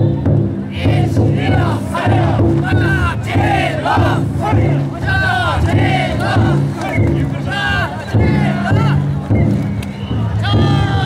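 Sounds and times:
crowd din: 0.0 - 11.0
men shouting together: 0.9 - 6.6.

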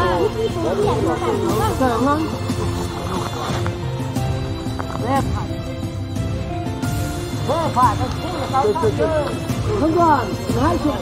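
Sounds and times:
music with held notes: 0.0 - 11.0.

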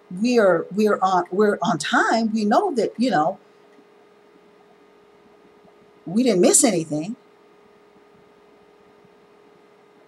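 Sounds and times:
low hiss: 0.0 - 10.0
thin steady hum: 0.0 - 10.0.

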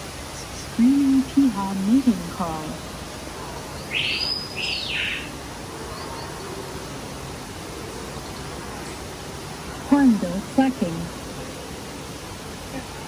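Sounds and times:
steady background hiss: 0.0 - 13.0
recorded bird call from speaker: 3.4 - 6.6.

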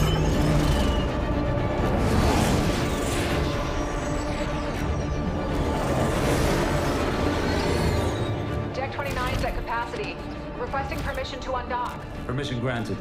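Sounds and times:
tense dramatic film score: 0.0 - 13.0.

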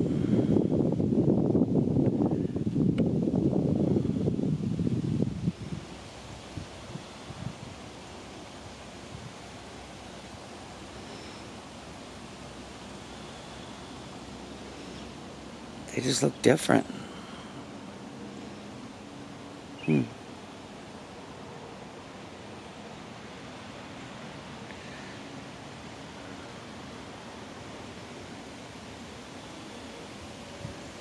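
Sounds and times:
wind buffeting microphone: 0.0 - 9.5
faint outdoor background: 0.0 - 31.0.

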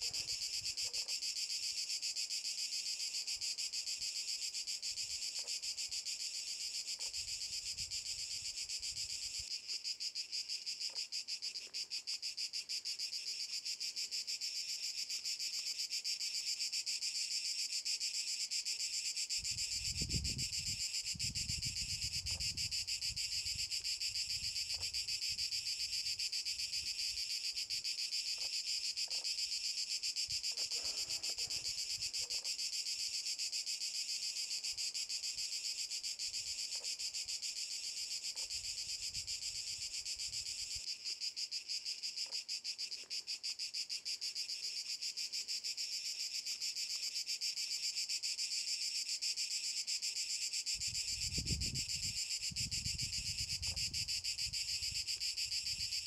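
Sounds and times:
cicadas buzzing: 0.0 - 56.0
wind rumble on microphone: 19.4 - 23.6, 50.8 - 55.0.

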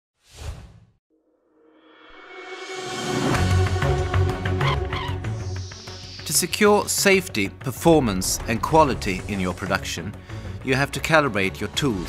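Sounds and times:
background music: 1.7 - 12.0
whoosh sound effect: 4.4 - 7.4.

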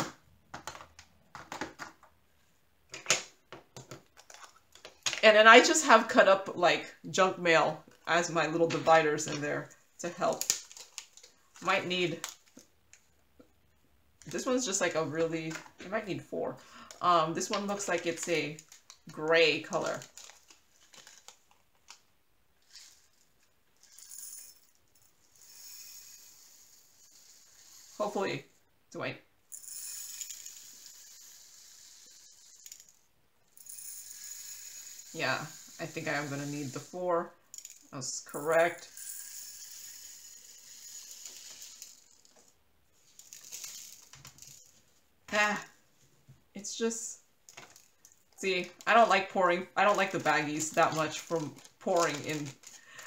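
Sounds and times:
plastic baggie rustling: 17.7 - 21.6, 47.5 - 53.0
rhinestones rattling in plastic bag: 19.7 - 21.5, 38.7 - 44.8, 49.8 - 53.0.

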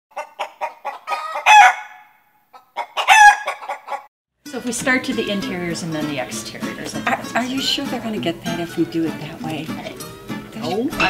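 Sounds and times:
rooster clucking and squawking: 0.1 - 4.1.

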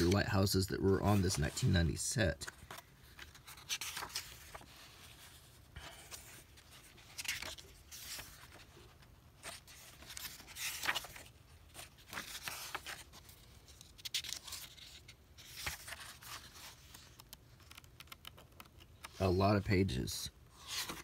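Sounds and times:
book pages turning: 0.0 - 19.6, 20.5 - 21.0.

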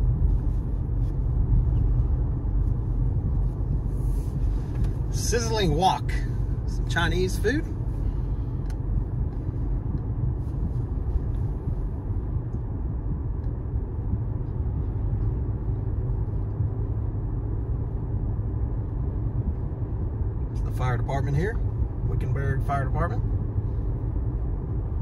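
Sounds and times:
car road noise rumble: 0.0 - 25.0.

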